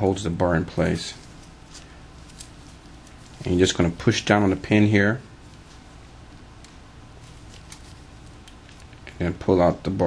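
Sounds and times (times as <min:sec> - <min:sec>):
room hiss and hum: 0:00.0 - 0:10.0.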